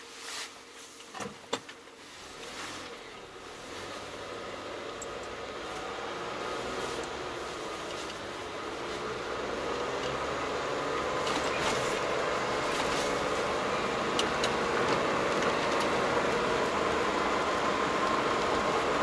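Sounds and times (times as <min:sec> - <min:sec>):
car engine: 0:01.2 - 0:19.0
tyres on wet road: 0:02.0 - 0:19.0.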